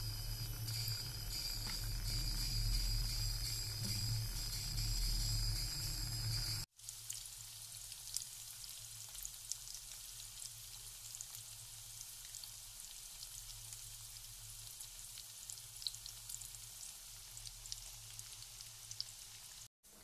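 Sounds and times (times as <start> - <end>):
faint low hum: 0.0 - 6.6
crackles and pops: 0.0 - 7.3
onions sizzling in oil: 0.0 - 19.7.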